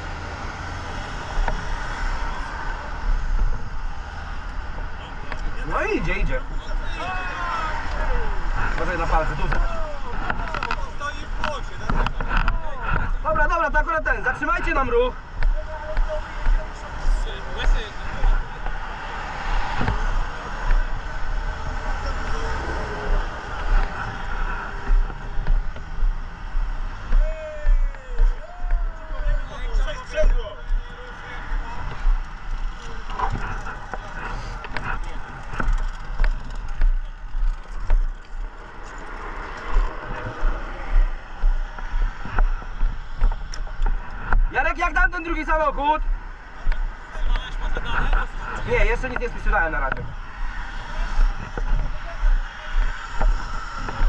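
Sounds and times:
traffic rumble: 0:00.0 - 0:54.0
wind: 0:00.0 - 0:54.0
indistinct voices: 0:04.8 - 0:54.0
radio chatter: 0:46.4 - 0:50.1.

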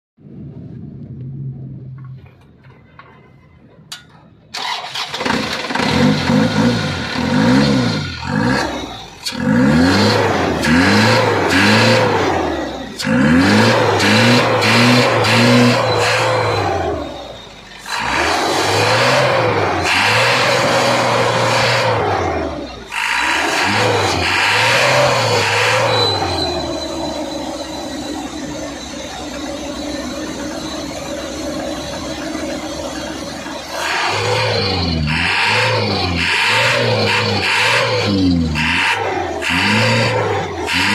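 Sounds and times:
diesel truck engine revving: 0:04.5 - 0:40.9.

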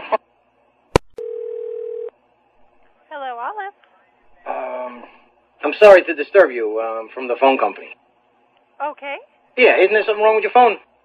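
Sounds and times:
steady phone tone: 0:01.2 - 0:02.1.

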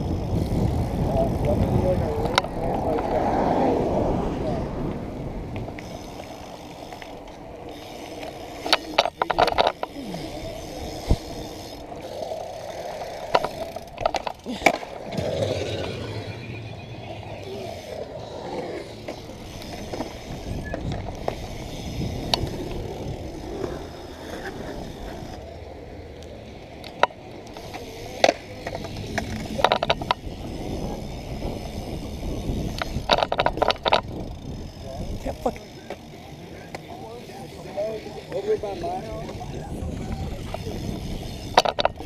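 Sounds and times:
wind on microphone: 0:00.0 - 0:06.8, 0:18.4 - 0:25.5, 0:28.5 - 0:35.5, 0:38.6 - 0:42.0
bike tyres rolling on concrete: 0:00.0 - 0:42.0
faint voices: 0:00.4 - 0:33.0, 0:34.2 - 0:42.0.

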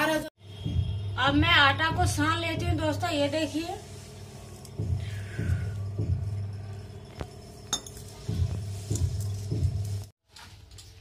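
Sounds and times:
bangles clinking: 0:05.5 - 0:10.1
sharp metallic clinks: 0:06.6 - 0:08.3.

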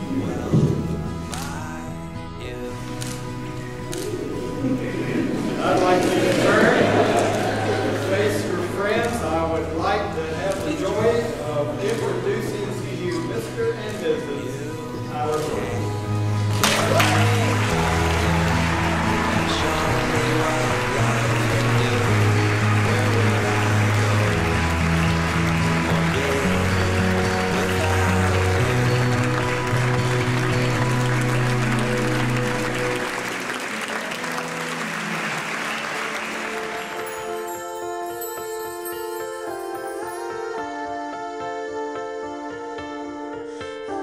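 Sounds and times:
music with long low notes: 0:00.0 - 0:42.8
crowd applauding and cheering: 0:03.0 - 0:13.4, 0:15.7 - 0:40.5.

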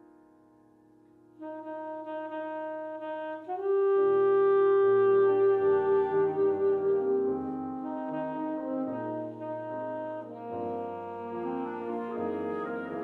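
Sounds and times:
piano chords: 0:00.0 - 0:13.0
alto saxophone jazz melody: 0:01.4 - 0:13.0.

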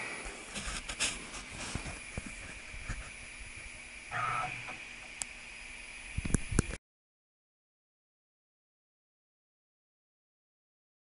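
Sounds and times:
high-pitched machine hum: 0:00.0 - 0:06.8.

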